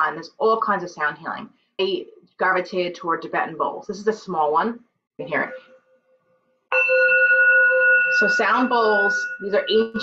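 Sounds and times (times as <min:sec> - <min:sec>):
singing bowl struck and ringing: 0:05.4 - 0:10.0.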